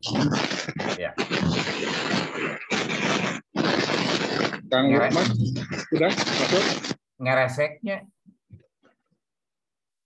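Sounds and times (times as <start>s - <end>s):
microphone crackling hiss: 0.0s - 7.6s.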